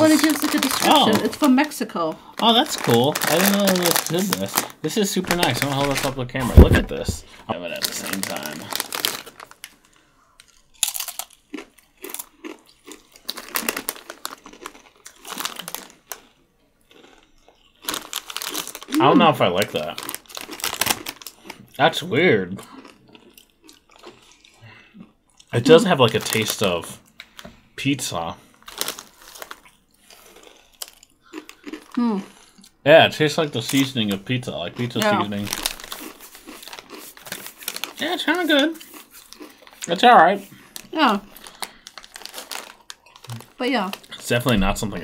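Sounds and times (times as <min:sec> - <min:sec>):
chips crunching: 0:00.0 - 0:01.8, 0:02.4 - 0:22.0, 0:22.6 - 0:27.4, 0:28.6 - 0:32.7, 0:33.4 - 0:44.9
foil snack bag crinkling: 0:00.0 - 0:16.3, 0:17.8 - 0:21.6, 0:25.7 - 0:27.4, 0:28.5 - 0:32.5, 0:33.4 - 0:44.9
person humming: 0:18.9 - 0:19.4.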